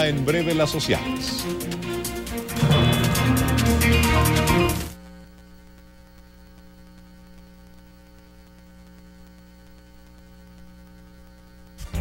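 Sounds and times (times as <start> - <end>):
electrical mains hum: 0.0 - 12.0.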